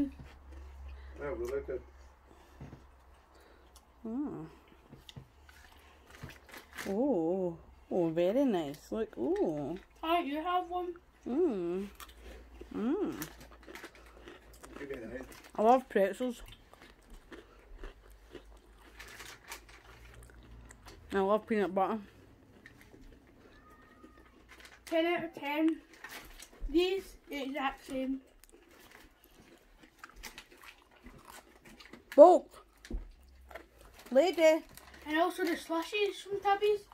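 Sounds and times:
crunchy pretzel chewing: 0.0 - 36.9.

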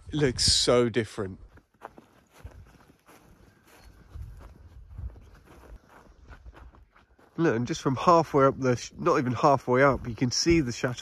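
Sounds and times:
footsteps on snowy gravel: 1.2 - 11.0.

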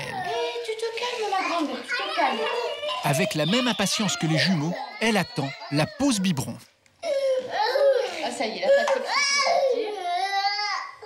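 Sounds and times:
toddler whining cry: 0.0 - 0.9, 1.9 - 11.0.

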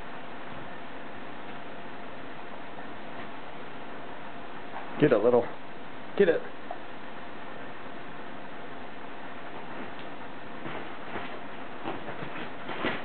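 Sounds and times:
steady background hiss: 0.0 - 13.0
kitten paws thudding on futon: 9.5 - 13.0.

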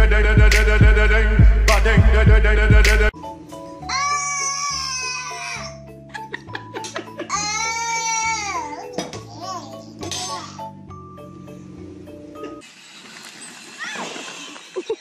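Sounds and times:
background music: 0.0 - 12.6
outdoor noise: 12.6 - 15.0.

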